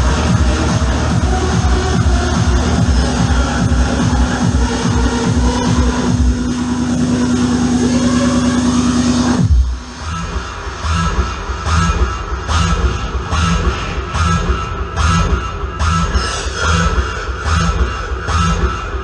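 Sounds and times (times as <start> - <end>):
kick drum and hi-hat beat: 0.0 - 19.0.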